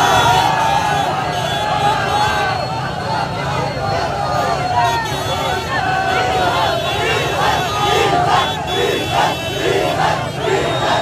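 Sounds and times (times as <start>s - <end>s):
crowd shouting slogans: 0.0s - 11.0s.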